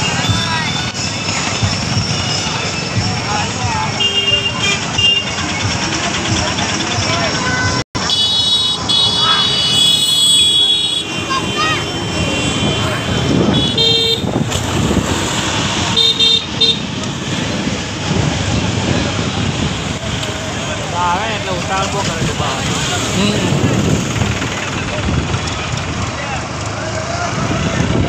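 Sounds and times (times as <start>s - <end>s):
engine and road noise: 0.0s - 28.0s
people's voices: 0.0s - 28.0s
vehicle horn honking: 3.9s - 5.4s, 7.4s - 14.4s, 15.9s - 16.9s.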